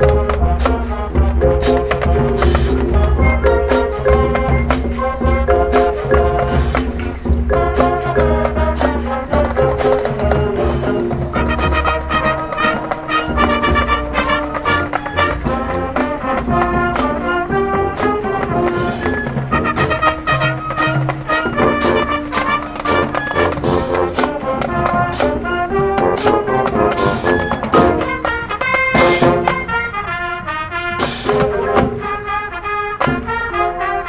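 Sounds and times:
drumline percussion: 0.0 - 33.8
trumpets and trombones melody: 0.0 - 34.0.

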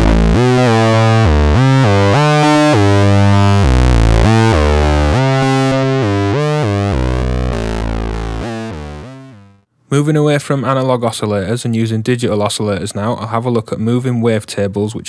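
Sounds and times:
fuzzy analogue synthesizer sequence: 0.0 - 9.6.

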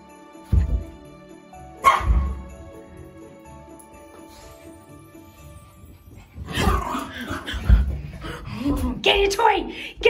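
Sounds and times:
faint background music: 0.0 - 10.0
small dog barking: 1.8 - 2.3.

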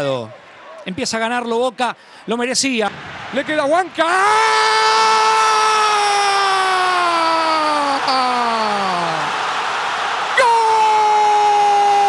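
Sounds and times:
commentator's long goal shout: 3.4 - 9.4, 10.3 - 12.0.

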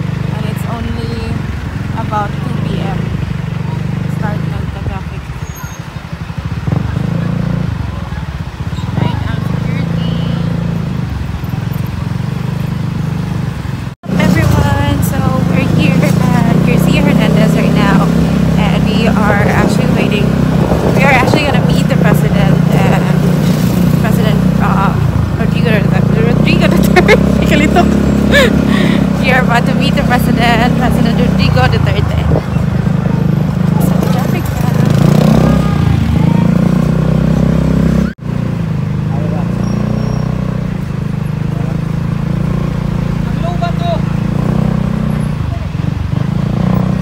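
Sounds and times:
motorcycle engine running: 0.0 - 47.0.

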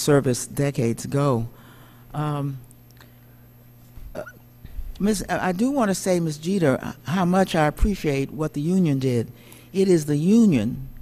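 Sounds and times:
low electrical hum: 0.0 - 11.0
man saying uh: 2.2 - 2.6.

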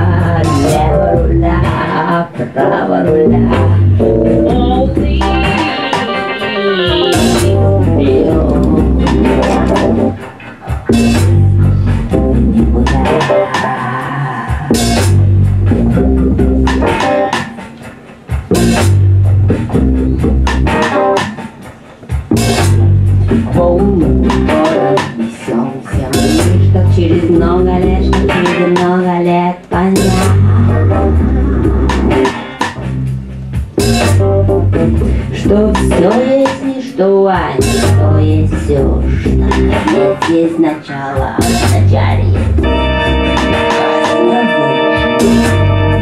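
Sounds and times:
woman singing: 0.0 - 9.9, 12.8 - 14.8, 23.5 - 30.4, 35.4 - 42.4
bass and drums groove: 0.0 - 40.6, 41.2 - 44.2, 45.0 - 46.0.

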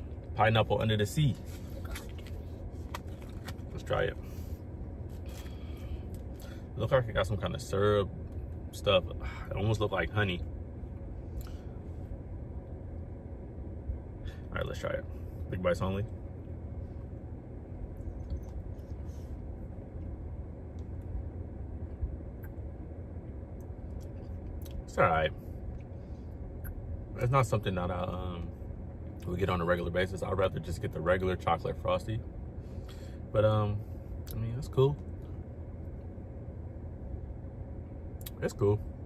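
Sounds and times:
low hum in car cabin: 0.0 - 39.0.

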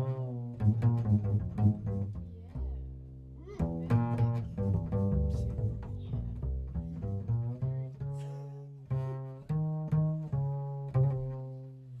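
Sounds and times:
double bass plucked: 0.0 - 12.0.

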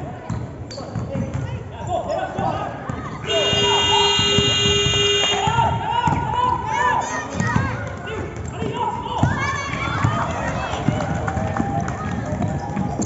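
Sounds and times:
basketball thumps: 0.3 - 1.6, 2.4 - 6.6
voices calling out: 2.0 - 13.0.

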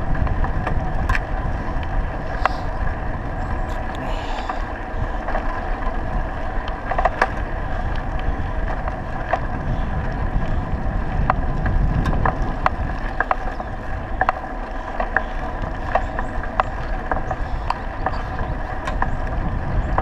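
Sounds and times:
bike rattling over bumps: 0.0 - 20.0
wind and road noise: 0.0 - 20.0.

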